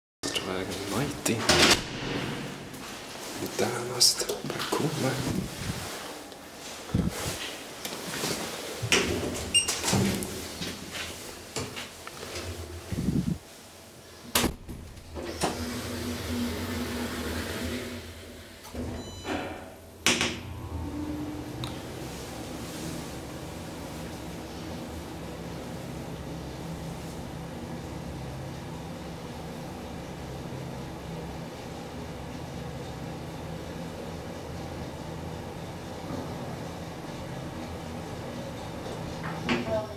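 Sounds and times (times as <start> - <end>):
loud bang: 1.5 - 2.8
sliding doors closing: 14.2 - 26.0
elevator motor hum: 14.3 - 39.9.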